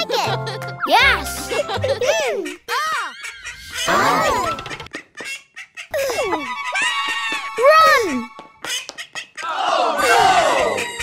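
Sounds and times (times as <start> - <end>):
cartoon duck quacking angrily: 9.4 - 11.0.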